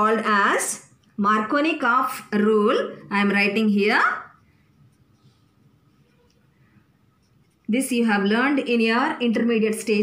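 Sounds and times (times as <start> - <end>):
marker writing on paper: 3.4 - 8.7.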